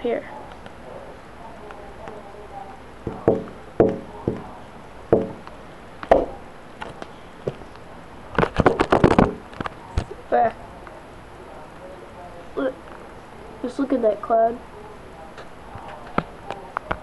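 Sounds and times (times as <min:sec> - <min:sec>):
sharp knocks and clicks: 0:03.0 - 0:06.4, 0:08.4 - 0:10.1.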